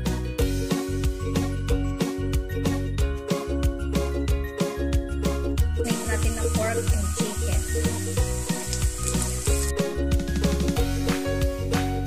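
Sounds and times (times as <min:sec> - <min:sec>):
background music with steady beat: 0:00.0 - 0:12.0
meat sizzling in a wok: 0:05.6 - 0:11.6.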